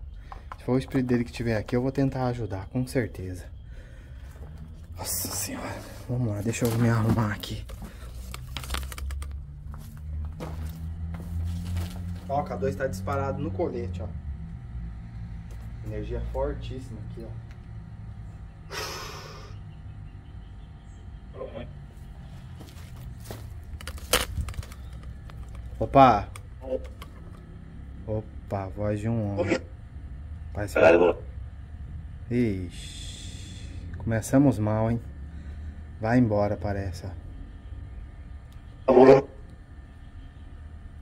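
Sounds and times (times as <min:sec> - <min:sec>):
low steady hum: 0:00.0 - 0:41.0
radio static crackles and clicks: 0:29.2 - 0:29.7, 0:30.6 - 0:31.3.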